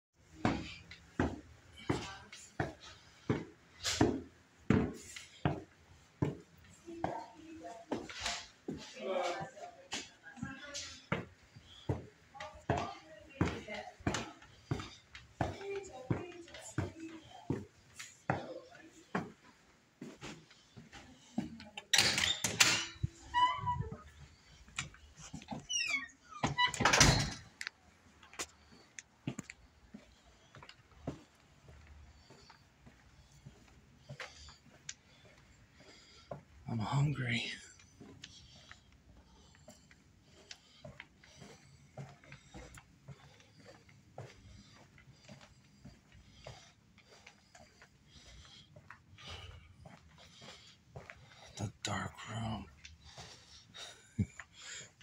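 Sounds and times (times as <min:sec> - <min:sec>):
footsteps on stairs: 0:00.2 - 0:55.0.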